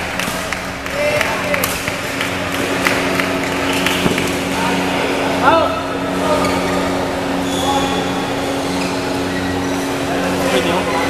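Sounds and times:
steady low hum: 0.0s - 11.0s
sharp clicks from badminton play: 0.1s - 4.5s
short high squeal: 7.4s - 9.8s.

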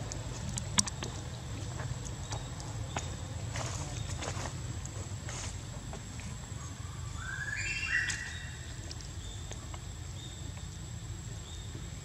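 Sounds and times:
high whistled calls: 7.1s - 8.7s.

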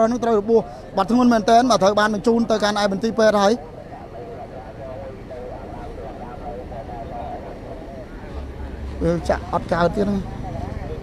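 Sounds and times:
faint distant voices: 0.0s - 11.0s
low vehicle engine rumble: 0.0s - 11.0s
man speaking: 0.0s - 11.0s.

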